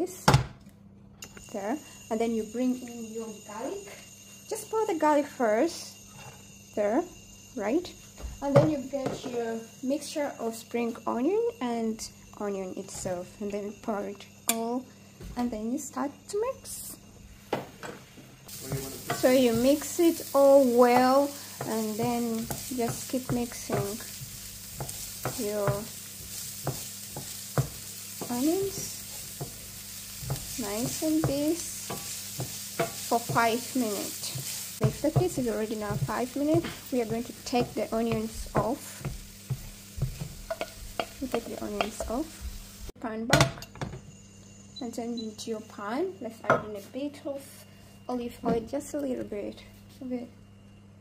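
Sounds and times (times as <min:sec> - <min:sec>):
onions sizzling in oil: 0:01.3 - 0:43.0
wooden spoon knocking pan: 0:18.5 - 0:42.7.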